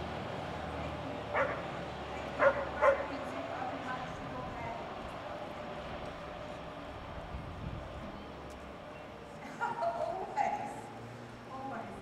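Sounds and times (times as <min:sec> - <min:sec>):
dog barking: 0:01.4 - 0:01.6, 0:02.4 - 0:03.1.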